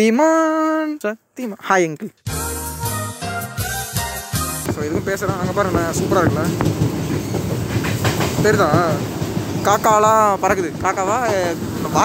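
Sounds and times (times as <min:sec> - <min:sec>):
person speaking: 0:04.7 - 0:07.0, 0:08.3 - 0:12.0.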